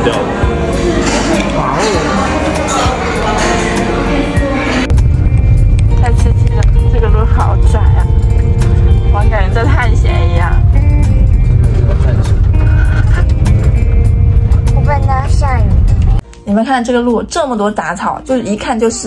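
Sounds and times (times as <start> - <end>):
car rumbling on dirt track: 4.9 - 16.2.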